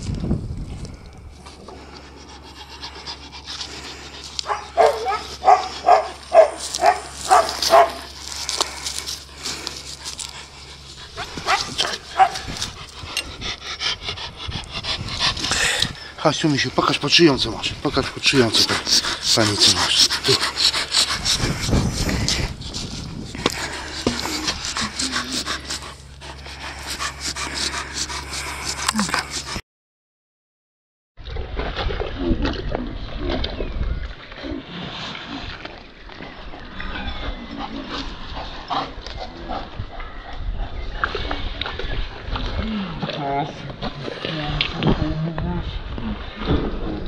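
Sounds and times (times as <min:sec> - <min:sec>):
dog panting: 0:02.2 - 0:29.6.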